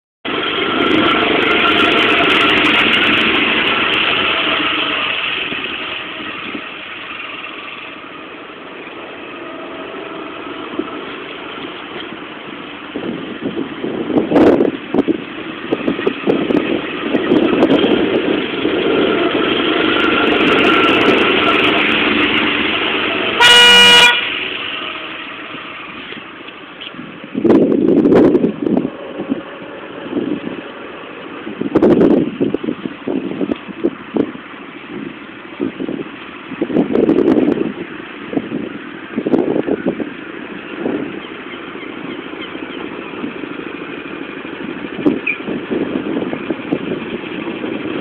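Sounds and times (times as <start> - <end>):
go-kart engines running: 0.3 - 48.0.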